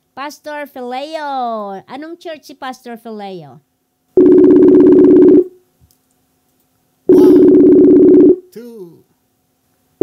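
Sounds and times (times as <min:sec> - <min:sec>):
telephone ringback tone: 0:04.2 - 0:05.5, 0:07.1 - 0:08.4.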